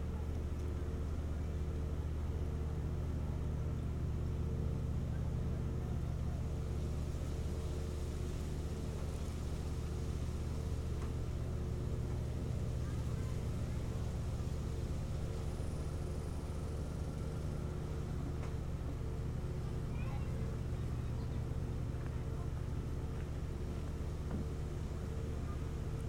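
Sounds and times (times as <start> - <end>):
low motor-like hum: 0.0 - 26.0.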